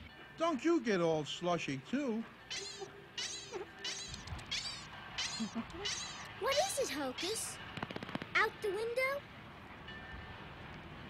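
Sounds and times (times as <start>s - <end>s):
cartoon rabbit squeaks: 2.5s - 7.6s.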